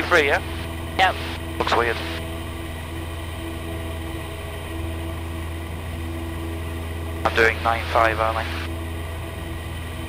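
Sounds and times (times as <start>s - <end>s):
airplane engine drone: 0.0s - 10.0s.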